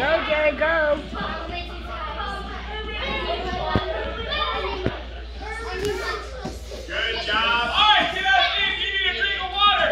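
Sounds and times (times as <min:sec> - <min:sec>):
children talking and calling out: 0:00.0 - 0:09.9.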